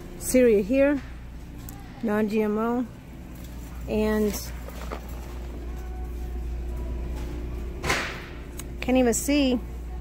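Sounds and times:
supermarket background hum: 0.0 - 10.0.

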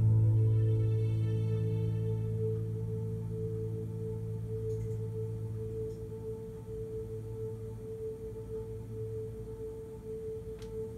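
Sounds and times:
low hum: 0.0 - 10.9.

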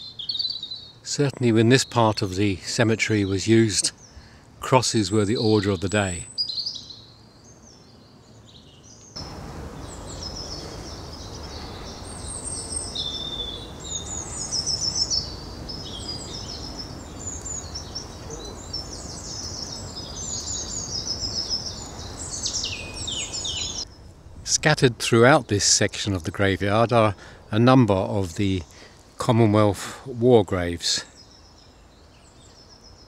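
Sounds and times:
songbirds chirping and singing: 0.0 - 33.0.

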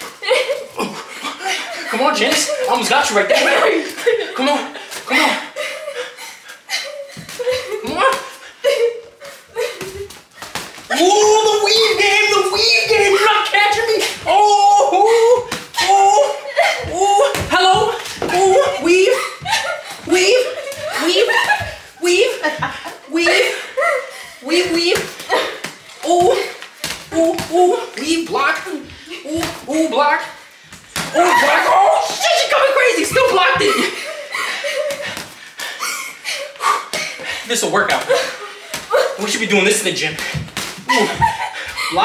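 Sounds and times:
yelps and grunts: 10.9 - 22.3, 31.1 - 35.1
person speaking: 10.9 - 23.7, 24.4 - 30.4, 31.0 - 34.1
boxing gloves smacking: 24.6 - 29.8, 40.2 - 41.4.

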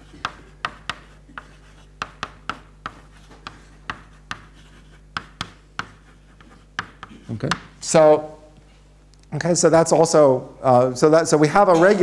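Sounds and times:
chalk tapping and scraping on board: 0.0 - 7.7.

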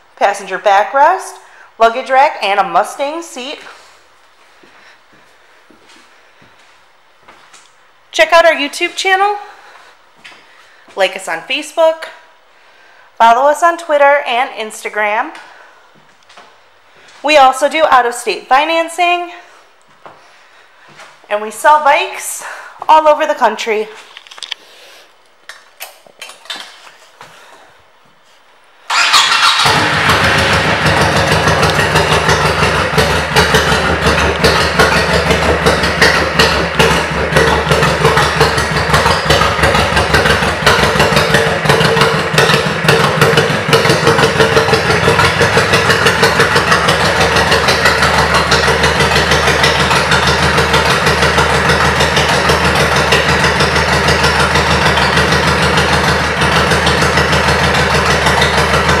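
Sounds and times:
motorcycle engine idling: 28.9 - 59.0.

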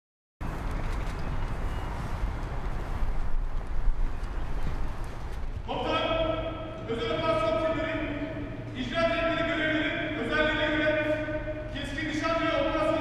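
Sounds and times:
footsteps on paved path: 0.4 - 5.7.

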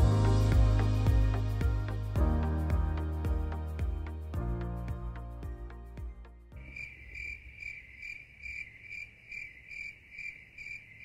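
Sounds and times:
cricket chirping: 6.6 - 11.0.

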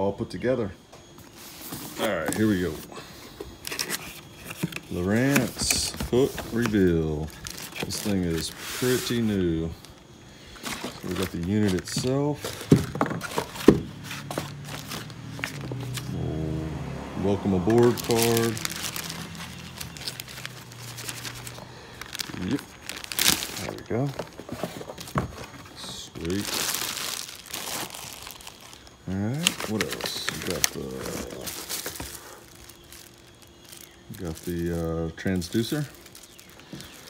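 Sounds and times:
plastic bag crinkling: 3.5 - 16.2, 17.2 - 37.0.

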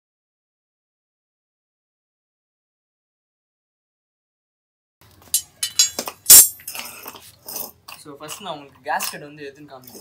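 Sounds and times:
metal jack clinking and knocking: 5.3 - 6.9.

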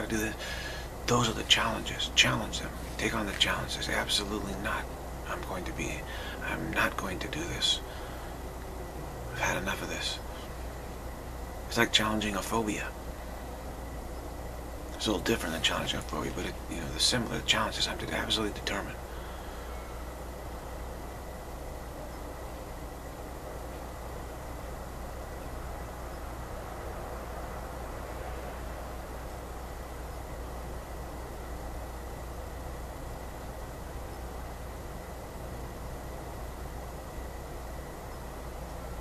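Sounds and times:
low hum: 0.0 - 39.0.

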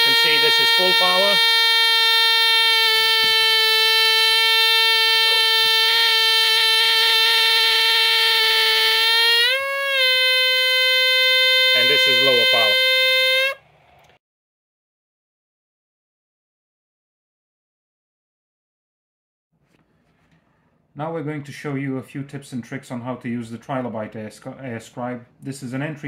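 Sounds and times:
pneumatic air pen buzzing: 0.0 - 13.6.

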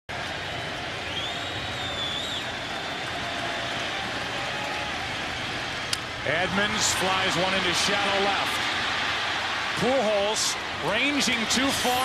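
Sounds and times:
ballpark crowd noise: 0.1 - 12.0.

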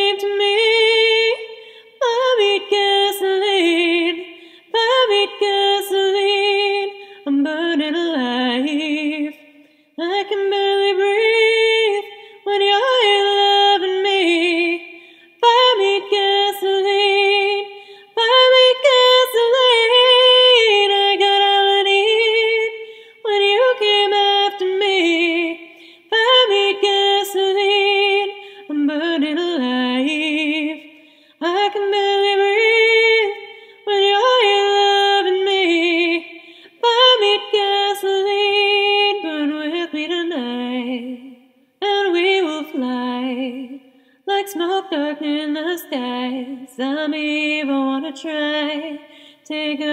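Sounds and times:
woman singing a cappella: 0.0 - 49.9.

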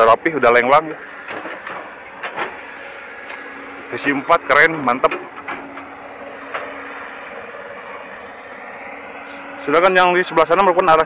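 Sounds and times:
distant engine humming: 0.0 - 11.0
outdoor background noise: 0.0 - 11.0.

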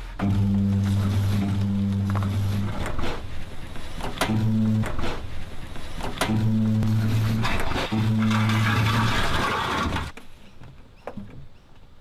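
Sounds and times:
wheels rolling on pavement: 7.0 - 10.2.

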